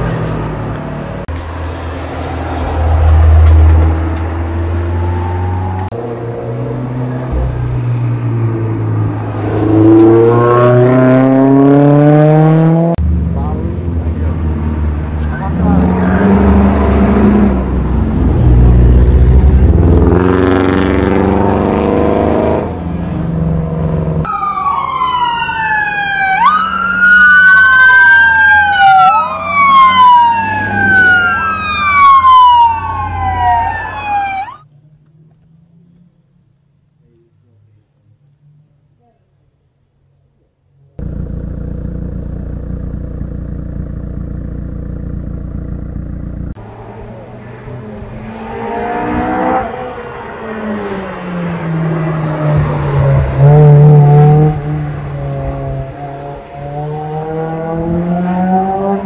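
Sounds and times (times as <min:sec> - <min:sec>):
car engines revving: 0:00.0 - 0:36.6, 0:40.9 - 0:59.0
police siren wailing: 0:04.6 - 0:05.9, 0:24.2 - 0:34.6.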